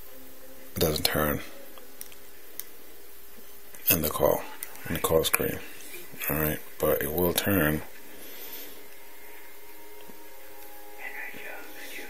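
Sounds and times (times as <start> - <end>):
background hiss: 0.0 - 12.0
faint hum: 0.0 - 12.0.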